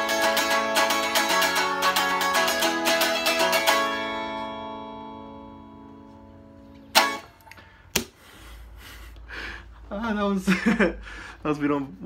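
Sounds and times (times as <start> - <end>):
electric guitar chord ringing: 0.0 - 7.6.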